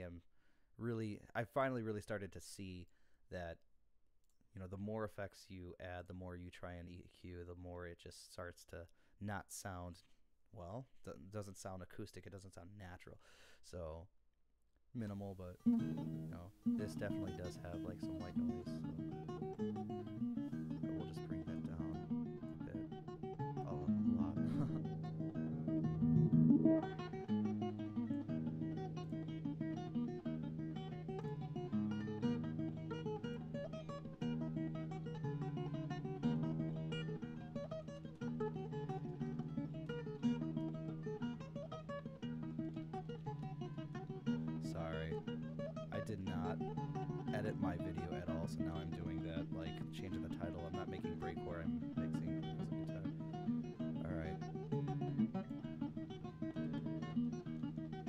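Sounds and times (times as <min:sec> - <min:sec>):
fingerstyle acoustic guitar: 0:15.1 - 0:58.0.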